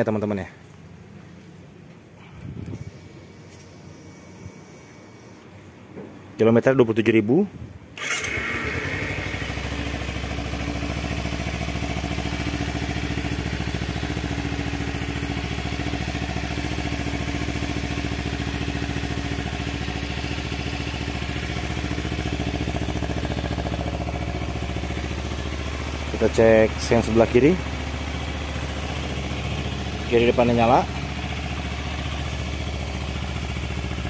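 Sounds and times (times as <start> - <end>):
motorcycle engine idling: 8.0 - 34.0.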